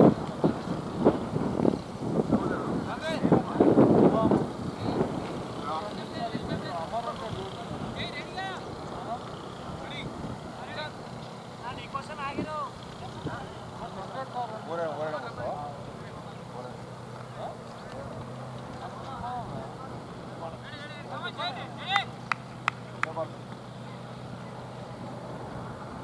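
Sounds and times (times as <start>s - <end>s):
distant voices calling and chatting: 0.0s - 26.0s
steady low hum: 0.0s - 26.0s.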